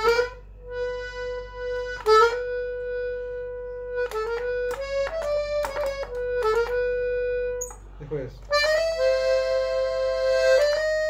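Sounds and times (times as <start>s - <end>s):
accordion playing slowly: 0.0s - 11.0s.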